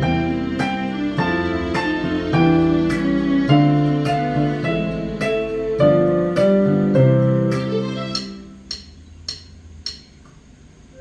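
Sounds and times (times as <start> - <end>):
digital piano notes: 0.0 - 10.1.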